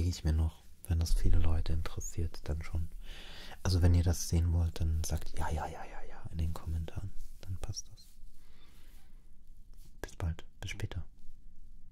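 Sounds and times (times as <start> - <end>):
man murmuring quietly: 3.6 - 8.2, 9.8 - 11.1.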